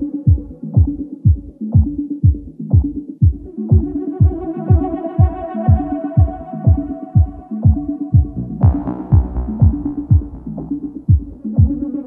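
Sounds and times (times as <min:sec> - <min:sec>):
house music: 0:00.0 - 0:12.0.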